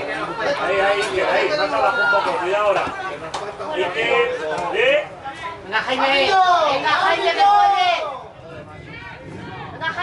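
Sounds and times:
people shouting and calling out: 0.0 - 10.0.

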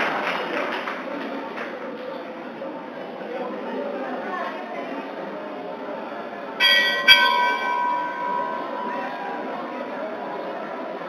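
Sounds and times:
metal bell struck: 6.6 - 9.9.

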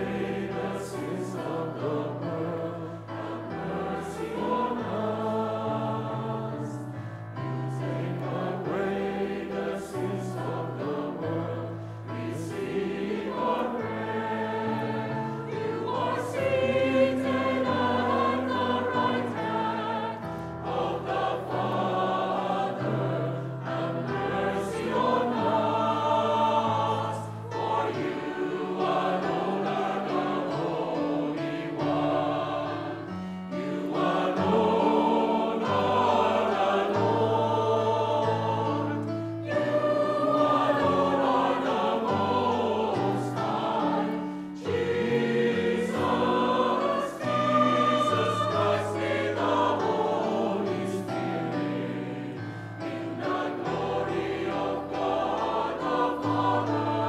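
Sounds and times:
mixed choir singing a hymn: 0.0 - 57.0.

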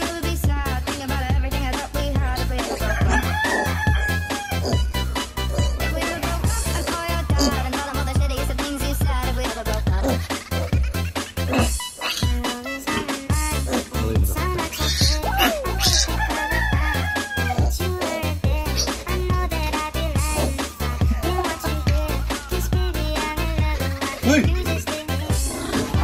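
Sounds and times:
background music with beat: 0.0 - 26.0
rooster crowing: 2.7 - 5.1, 14.9 - 17.8.

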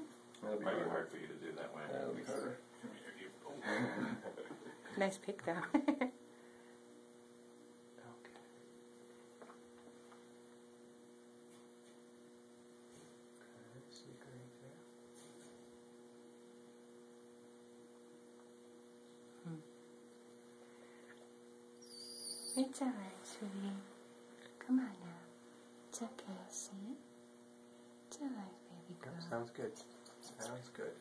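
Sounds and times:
low electrical hum: 0.0 - 31.0.

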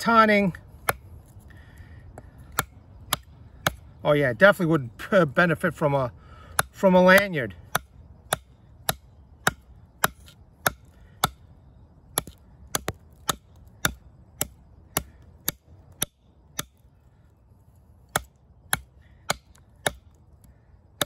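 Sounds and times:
knife chopping into wood: 2.5 - 3.8, 6.6 - 11.4, 12.2 - 16.8, 18.1 - 20.1.

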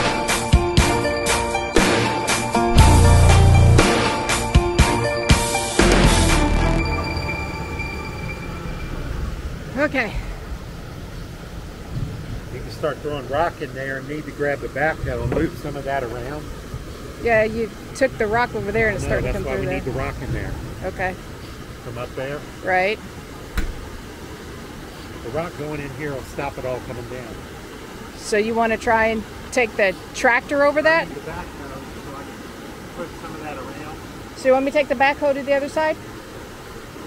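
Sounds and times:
thin high whine: 0.0 - 10.8
diesel engine idling: 1.0 - 27.6
creek water rushing over rocks: 8.6 - 37.0
sharp knock: 23.6 - 23.9.

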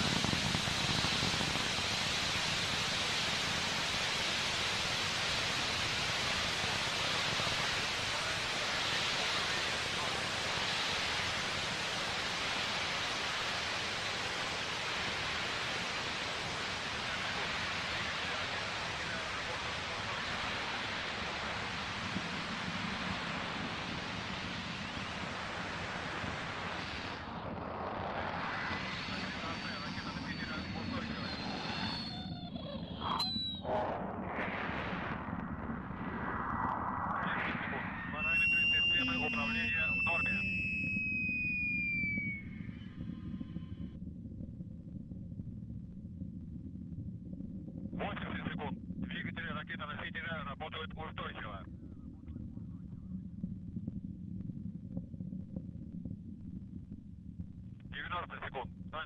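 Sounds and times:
rocket engines roaring: 0.0 - 43.8
faint high whistling tones: 28.7 - 33.8, 37.0 - 43.8.

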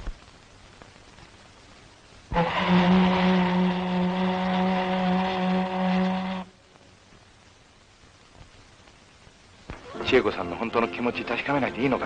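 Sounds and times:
ship's whistle blast: 2.3 - 6.6.

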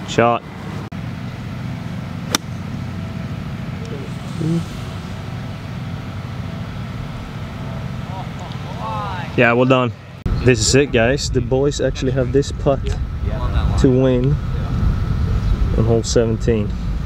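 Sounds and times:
low outdoor rumble: 0.0 - 17.0
golf club striking ball: 2.2 - 2.8.

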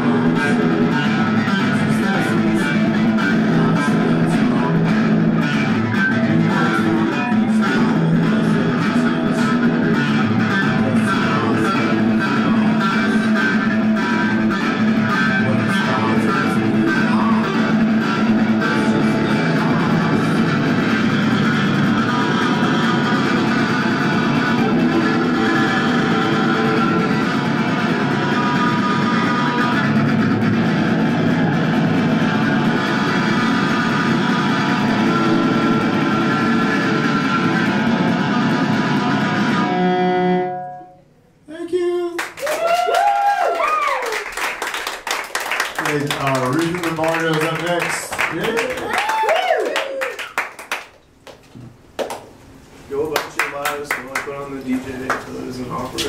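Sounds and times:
loud electric guitar: 0.0 - 41.1.

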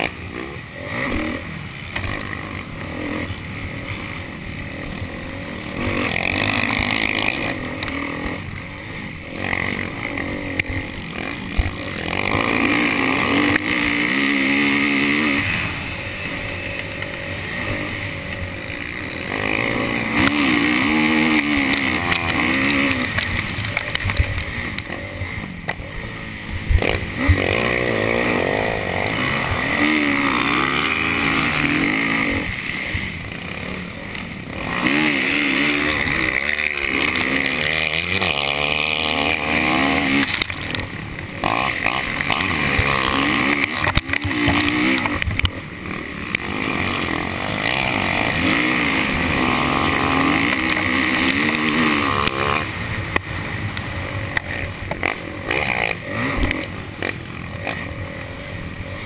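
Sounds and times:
motorbike engine revving: 0.0 - 59.0.

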